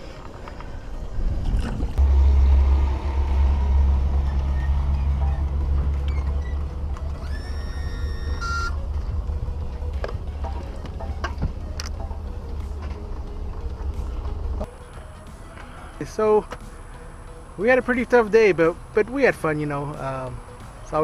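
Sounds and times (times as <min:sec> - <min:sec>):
engine idling: 0:02.0 - 0:21.0.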